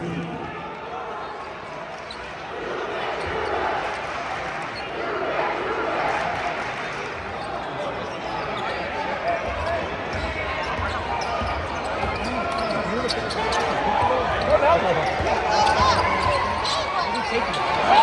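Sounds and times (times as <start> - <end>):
crowd chatter in large hall: 0.0 - 18.0.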